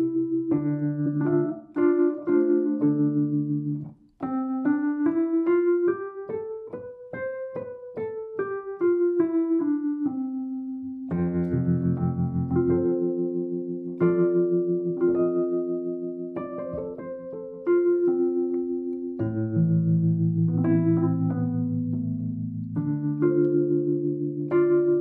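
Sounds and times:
electric piano playing: 0.0s - 25.0s.

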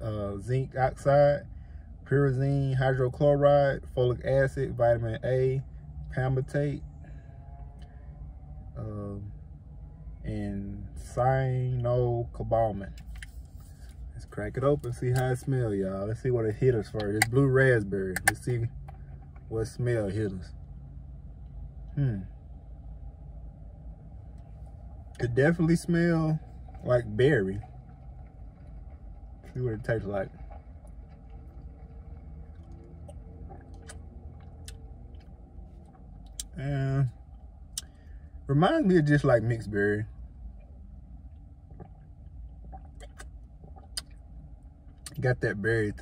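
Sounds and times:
car idling from inside: 0.0s - 46.0s
man swallowing drink: 42.6s - 44.2s.

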